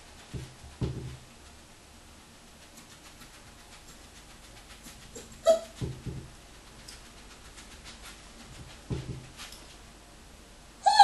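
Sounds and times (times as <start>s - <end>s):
puppy yipping: 5.1s - 5.8s.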